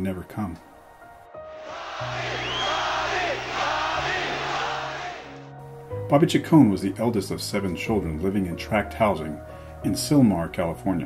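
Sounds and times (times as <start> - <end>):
crowd cheering and yelling: 1.6 - 5.5.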